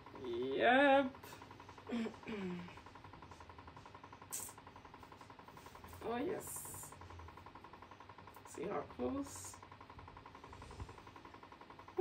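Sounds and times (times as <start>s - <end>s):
motor hum: 0.0s - 12.0s
fast rattle: 2.7s - 12.0s.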